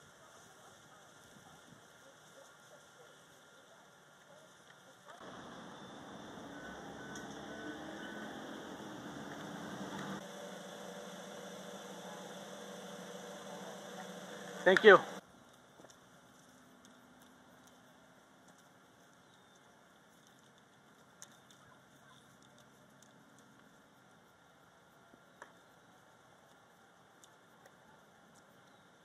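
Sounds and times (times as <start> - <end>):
faint outdoor background noise: 0.0 - 29.0
low mechanical hum: 5.2 - 15.2.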